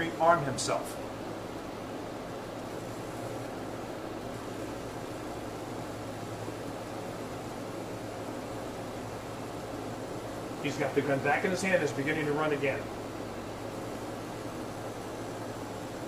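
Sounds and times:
even hiss: 0:00.0 - 0:16.0
low constant hum: 0:00.0 - 0:16.0.

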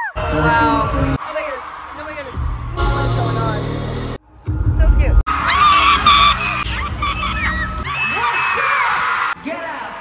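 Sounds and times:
loud bass-heavy music: 0:02.4 - 0:08.0
fans screaming and cheering: 0:05.3 - 0:10.0.

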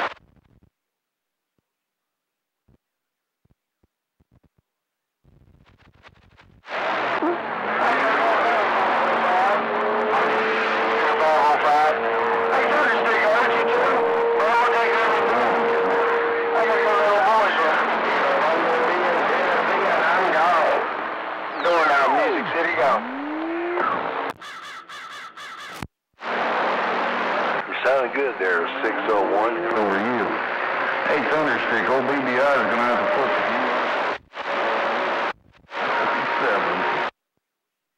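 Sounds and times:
sliding radio tone: 0:05.7 - 0:37.1
garbled radio voices: 0:06.7 - 0:26.8, 0:27.4 - 0:37.1
steady radio whistle: 0:11.0 - 0:24.5, 0:27.7 - 0:35.1.

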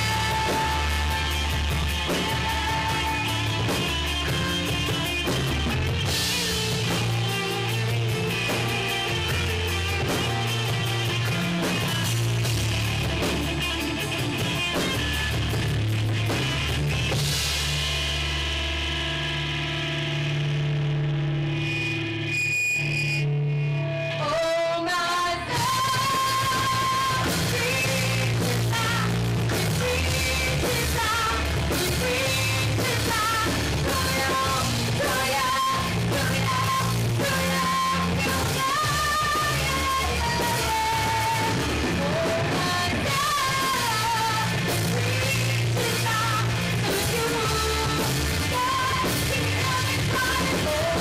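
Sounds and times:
woman singing: 0:00.0 - 0:14.7, 0:24.1 - 0:51.0
live rock band playing: 0:00.0 - 0:51.0.

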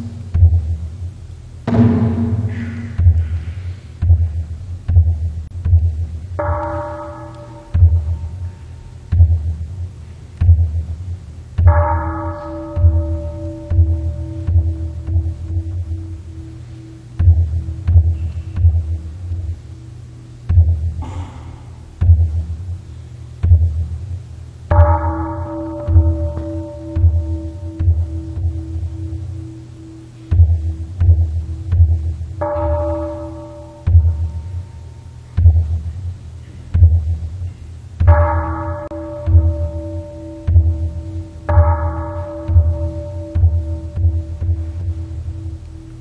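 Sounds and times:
large drum deep strokes: 0:00.0 - 0:46.0
pulsing ringing tone: 0:11.7 - 0:21.4, 0:24.7 - 0:35.7, 0:38.1 - 0:46.0.

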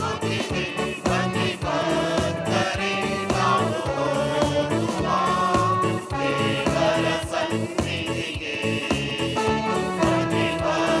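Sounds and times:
choir singing a hymn: 0:00.0 - 0:11.0
instrumental backing with steady beat: 0:00.0 - 0:11.0.

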